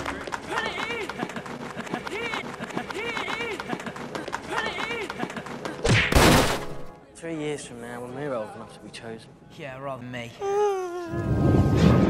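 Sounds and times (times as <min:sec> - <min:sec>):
crowd clapping: 0:00.0 - 0:05.8.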